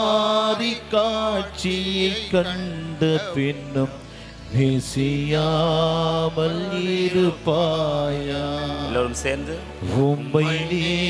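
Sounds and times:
man chanting a hymn: 0.0s - 11.0s.

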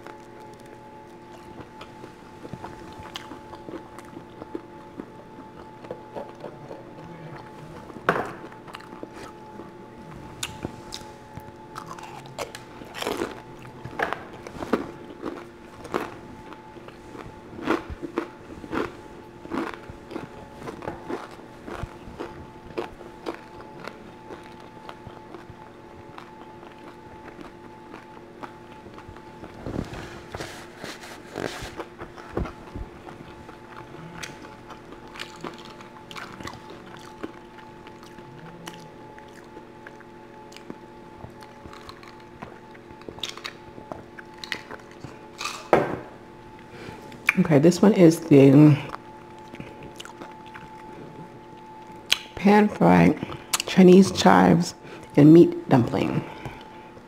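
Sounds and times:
person chewing food: 0.0s - 45.7s, 48.8s - 52.4s, 53.2s - 53.7s, 56.3s - 57.0s.

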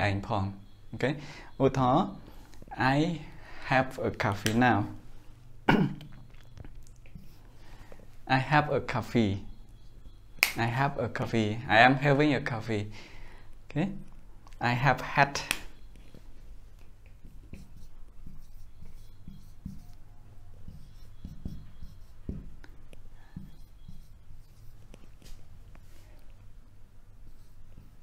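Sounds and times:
man coughing: 5.6s - 6.0s
marker scratching on whiteboard: 7.1s - 7.5s, 16.8s - 25.4s, 27.2s - 28.0s.

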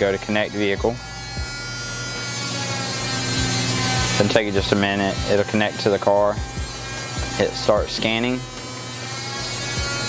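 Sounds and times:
buzzing motor hum: 0.0s - 10.0s.

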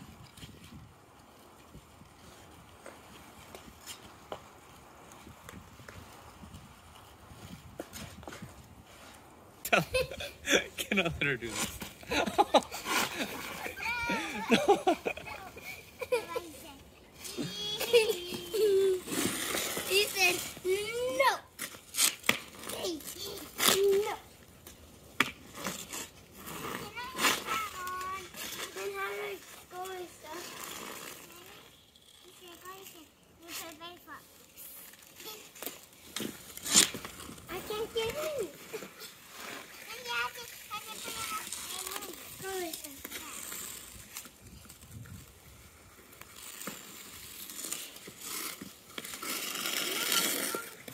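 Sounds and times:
children chattering and calling out: 11.5s - 21.7s, 22.5s - 24.4s, 26.4s - 35.9s, 36.7s - 44.8s, 46.0s - 50.9s
hockey stick striking ice: 21.6s - 24.1s, 25.1s - 29.6s, 34.9s - 44.3s, 46.2s - 50.9s.

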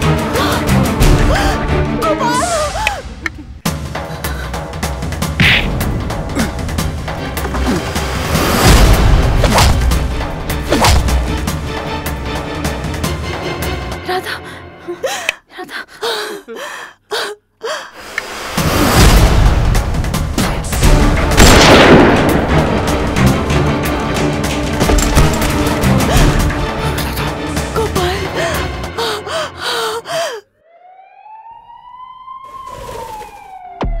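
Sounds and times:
woman gasping and moaning: 0.2s - 4.8s, 6.2s - 6.8s, 14.0s - 18.1s, 25.9s - 30.6s
ambulance siren wail: 29.0s - 34.0s.

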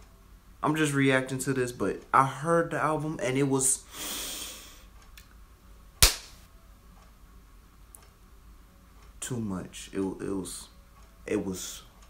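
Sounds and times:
sharp crack: 6.0s - 6.4s.

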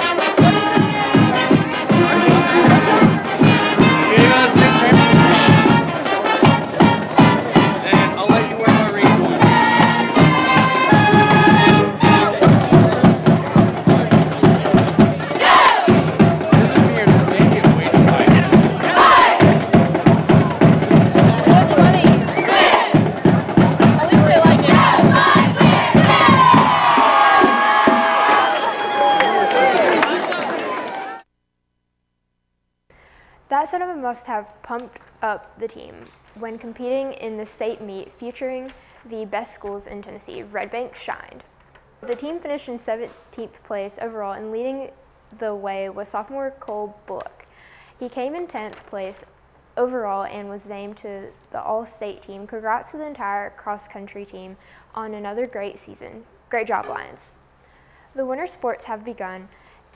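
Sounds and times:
band drums and brass playing: 0.0s - 31.2s
crowd cheering: 0.0s - 31.3s
loud shouts: 0.4s - 31.2s.

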